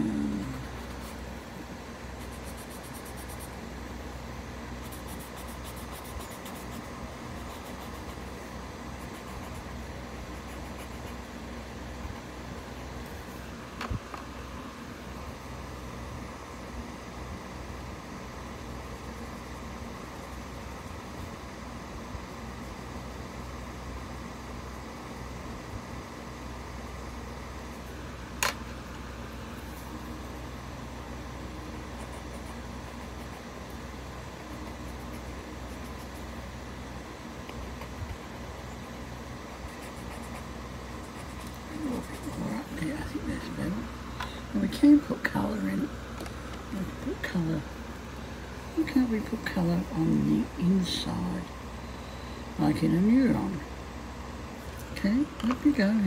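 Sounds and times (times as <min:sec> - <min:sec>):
low room hum and hiss: 0:00.0 - 0:56.0.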